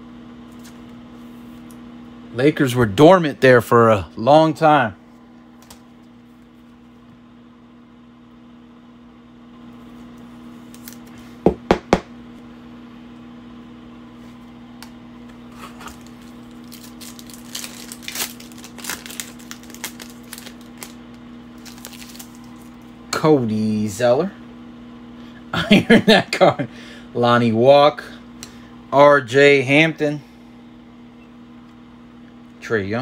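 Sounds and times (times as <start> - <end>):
steady low hum: 0.0 - 33.0
foil pack crinkling and tearing: 10.7 - 11.1, 15.5 - 22.9.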